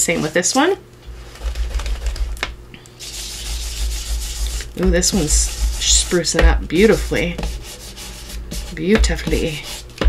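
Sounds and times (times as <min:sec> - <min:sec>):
ink blending tool rubbing on paper: 0:03.0 - 0:10.0.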